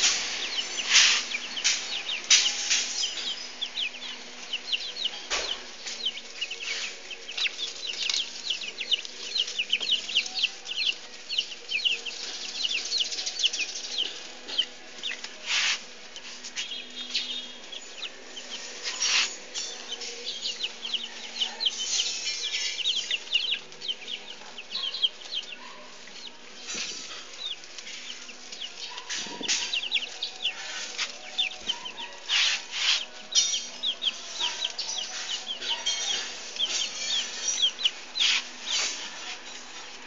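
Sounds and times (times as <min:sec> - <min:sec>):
baby chicks peeping: 0:00.0 - 0:40.0.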